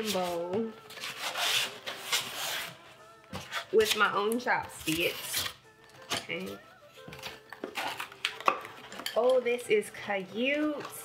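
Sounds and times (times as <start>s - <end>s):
cardboard rubbing and scraping: 0.0s - 2.8s.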